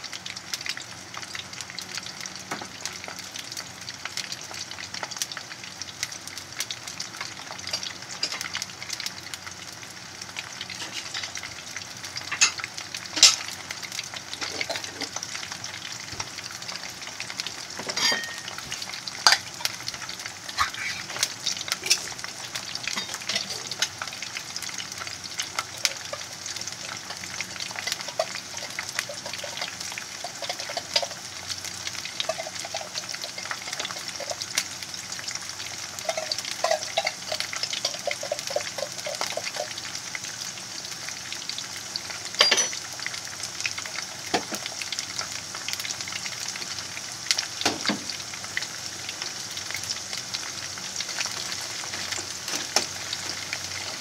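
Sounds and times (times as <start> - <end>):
fries sizzling in hot oil: 0.0 - 54.0.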